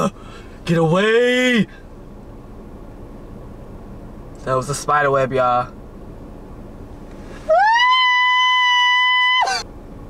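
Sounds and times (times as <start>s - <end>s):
man's falsetto scream: 7.5s - 9.6s.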